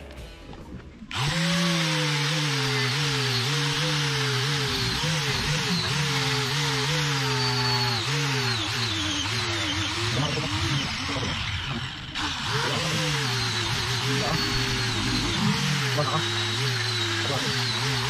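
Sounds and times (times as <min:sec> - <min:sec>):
angle grinder sanding steel: 0:01.1 - 0:18.0.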